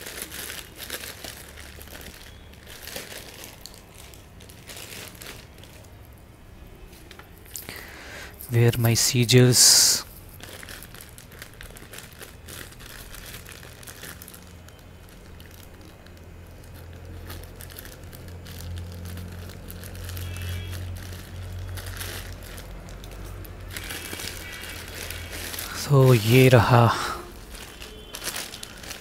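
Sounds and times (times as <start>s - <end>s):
plastic mailer crinkling: 0.0s - 6.1s, 8.5s - 29.0s.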